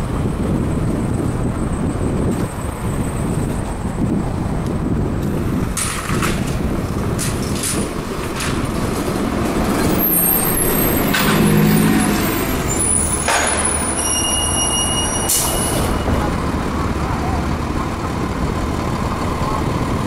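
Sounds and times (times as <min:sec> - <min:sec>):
bus engine running: 0:00.0 - 0:20.0
air brakes hissing: 0:12.7 - 0:16.1
high steady tone: 0:13.8 - 0:16.2.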